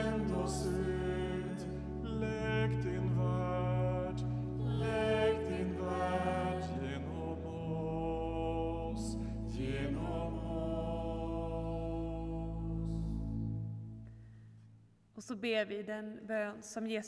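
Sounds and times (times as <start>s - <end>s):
voices singing chant-like prayer: 0.0s - 13.1s
sustained low accompaniment: 0.0s - 14.3s.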